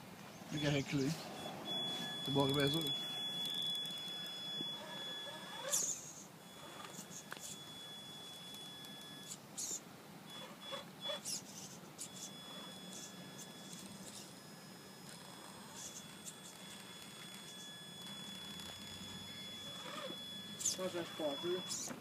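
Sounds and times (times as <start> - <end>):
electric drivetrain whine: 0.6 - 22.0.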